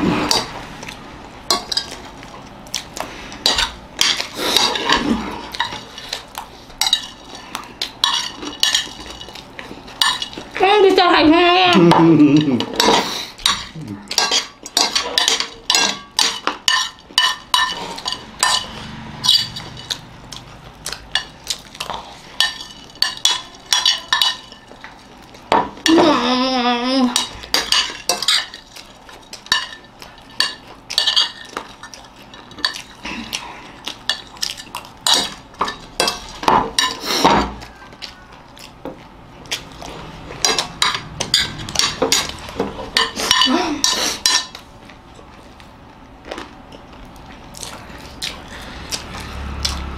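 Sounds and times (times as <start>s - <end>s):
metal spoons scraping plates: 11.8s - 20.1s, 40.3s - 44.6s
person's wavering voice: 25.9s - 27.2s.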